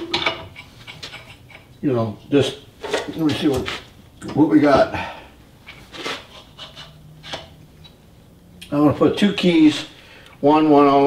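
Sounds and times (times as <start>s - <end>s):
low faint hum: 0.0s - 11.0s.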